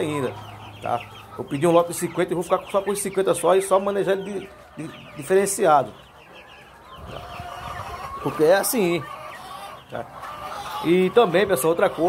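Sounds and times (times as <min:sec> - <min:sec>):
chickens peeping: 0:00.0 - 0:12.0.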